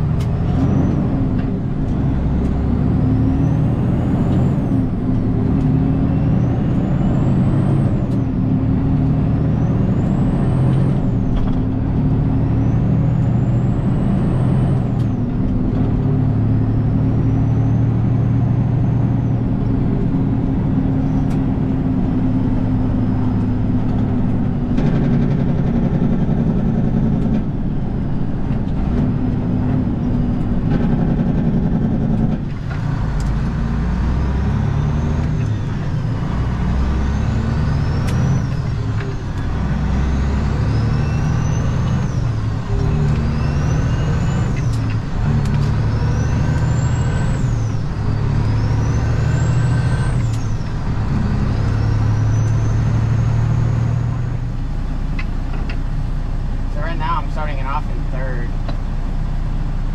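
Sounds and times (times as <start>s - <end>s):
high transmission whine: 0.0s - 59.9s
truck diesel engine accelerating: 0.0s - 59.9s.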